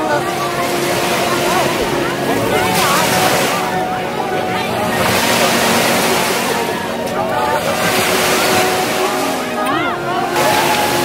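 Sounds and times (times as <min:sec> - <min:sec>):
distant people's voices: 0:00.0 - 0:11.0
waves washing on beach: 0:00.0 - 0:11.0.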